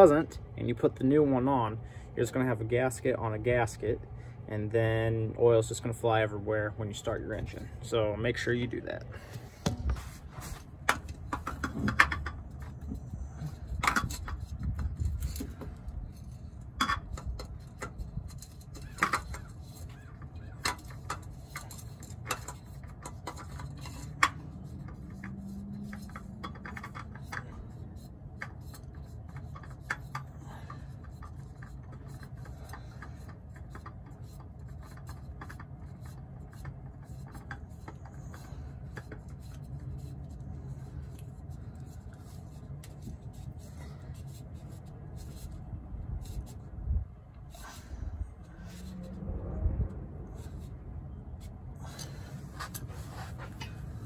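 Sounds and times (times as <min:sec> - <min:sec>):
steady low hum: 0:00.0 - 0:54.0
oil filter clicks and scraping: 0:05.6 - 0:54.0.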